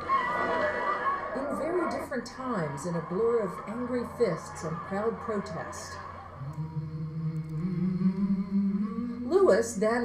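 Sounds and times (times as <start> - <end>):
low voice humming: 6.4 - 9.6.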